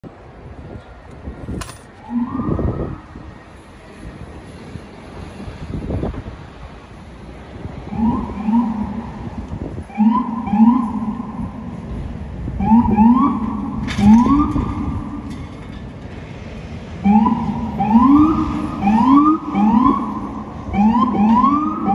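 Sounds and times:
city traffic noise: 0.0 - 21.9
police siren blasts: 2.0 - 3.3, 7.8 - 15.3, 17.0 - 21.9.

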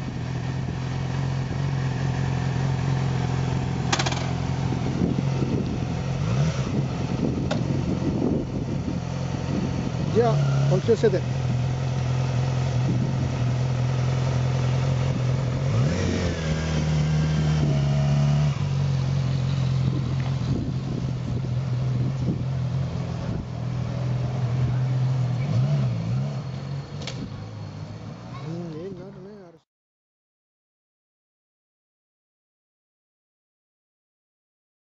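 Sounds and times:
motorcycle engine pulling away: 0.0 - 29.1.

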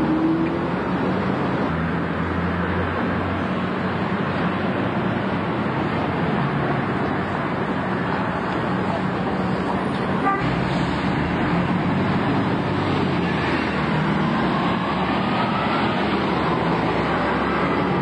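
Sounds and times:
diesel buses in traffic: 0.0 - 18.0.

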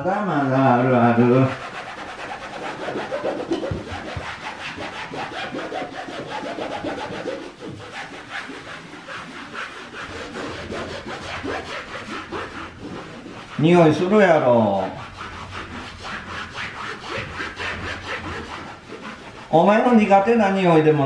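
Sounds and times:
cloth scrubbing a wall: 0.0 - 21.0.

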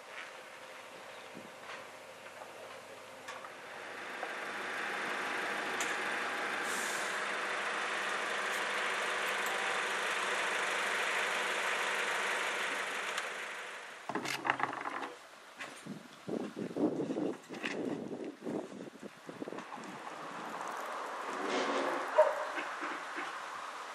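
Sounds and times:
mechanical engine with hiss: 3.5 - 14.1.

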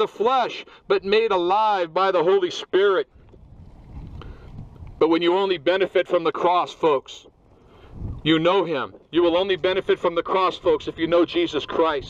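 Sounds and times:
wind buffeting microphone: 3.0 - 5.8, 7.3 - 12.0.

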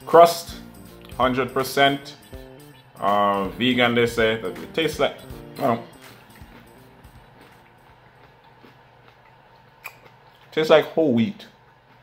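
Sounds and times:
faint chewing pastry: 6.2 - 12.0.

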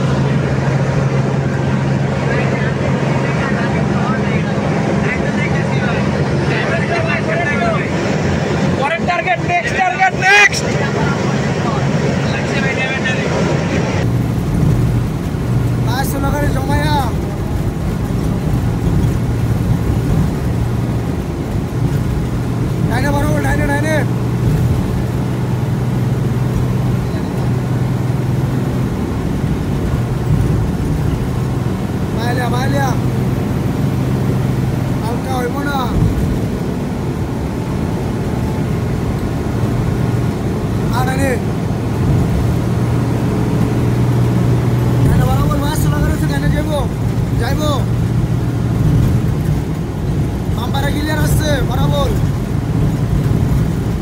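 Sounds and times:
vehicle engine and road noise: 0.0 - 54.0.

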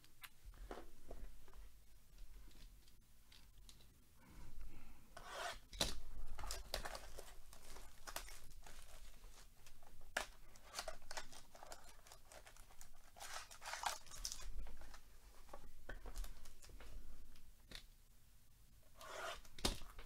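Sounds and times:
plastic wrapping crinkling: 5.9 - 16.8.

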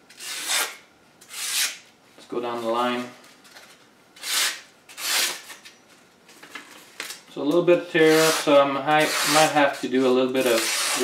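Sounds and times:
machete cutting paper: 0.1 - 1.8, 4.2 - 5.5, 10.4 - 11.0.

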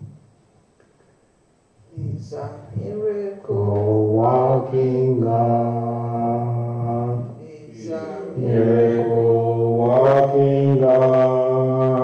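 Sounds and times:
slow chant-like singing: 3.3 - 12.0
steady low drone: 3.5 - 12.0.

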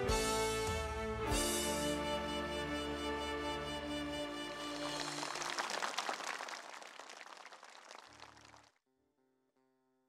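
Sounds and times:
background music: 0.0 - 5.8
audience applause: 4.7 - 8.7.

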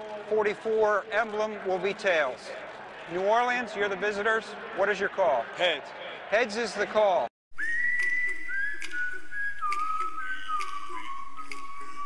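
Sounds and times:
whistle-like descending tone: 7.6 - 12.0.

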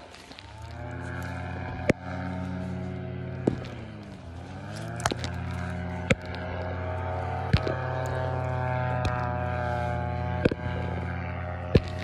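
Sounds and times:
paramotor engine idling: 0.0 - 12.0.

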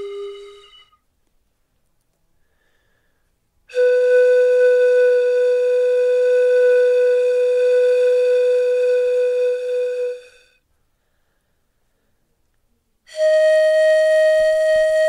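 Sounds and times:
long flute-like note: 0.0 - 1.0, 3.7 - 10.6, 13.1 - 15.0.

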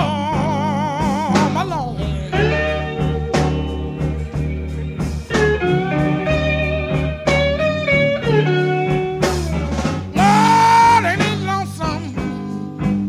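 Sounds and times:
electric blues band playing: 0.0 - 13.0
electric guitar bending notes: 0.0 - 13.0.

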